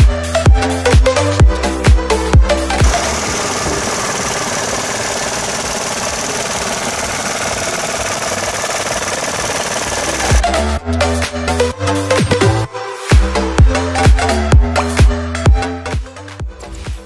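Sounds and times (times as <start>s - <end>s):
car engine idling: 2.8s - 10.5s.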